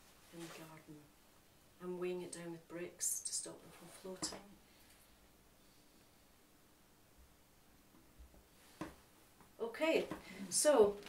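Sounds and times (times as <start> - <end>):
faint steady hiss: 0.0 - 11.0.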